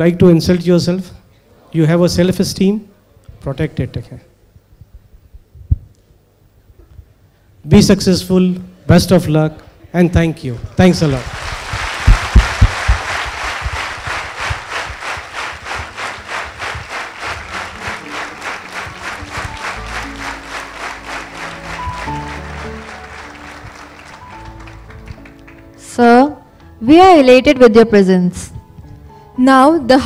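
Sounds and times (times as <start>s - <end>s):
audience applauding: 10.8s - 25.8s
loud low thumps: 11.6s - 16.0s
music with held stepping notes: 12.1s - 29.9s.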